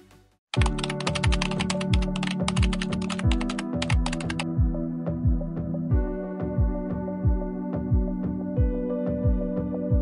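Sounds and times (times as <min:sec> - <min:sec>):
music with steady low beat: 0:00.0 - 0:10.0
rapid keyboard typing: 0:00.6 - 0:04.5.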